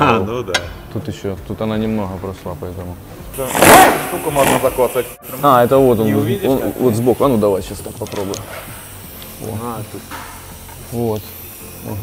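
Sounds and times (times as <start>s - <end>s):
compressed air rushing: 3.3s - 12.0s.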